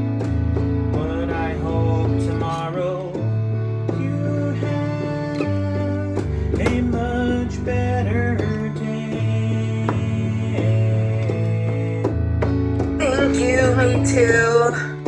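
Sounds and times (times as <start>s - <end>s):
electronic keyboard tune: 0.0s - 15.0s.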